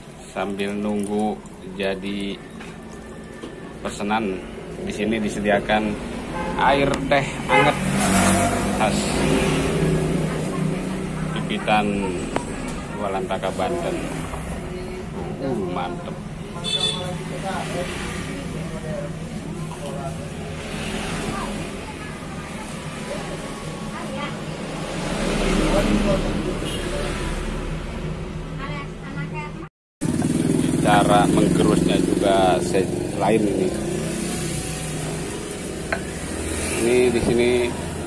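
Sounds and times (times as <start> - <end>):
vehicle engines humming: 0.0 - 38.0.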